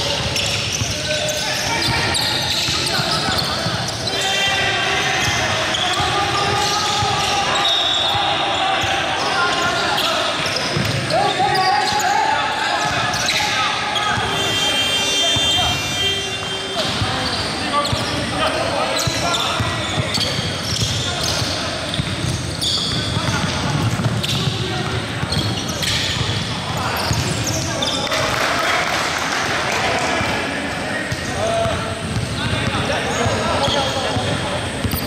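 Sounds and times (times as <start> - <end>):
players calling out: 0.0 - 35.0.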